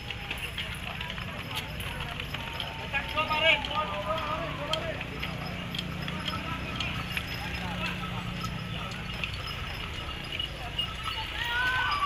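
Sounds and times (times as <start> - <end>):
crowd talking: 0.0 - 12.0.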